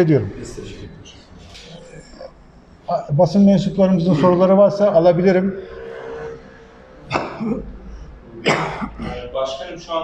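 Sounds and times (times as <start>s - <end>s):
man coughing: 7.1s - 7.7s, 8.4s - 9.4s.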